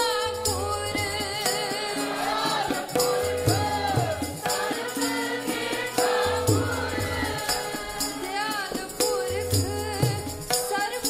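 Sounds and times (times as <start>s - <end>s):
harmonium: 0.0s - 11.0s
tabla strokes: 0.0s - 11.0s
women singing a hymn: 0.0s - 11.0s.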